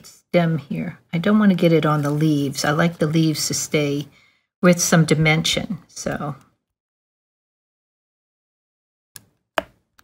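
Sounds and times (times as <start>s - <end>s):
pen tool tapping on card: 9.2s - 9.8s.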